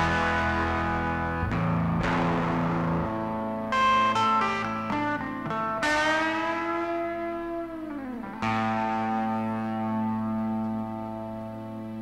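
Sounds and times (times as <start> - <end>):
electric guitar chords ringing: 0.0 - 12.0.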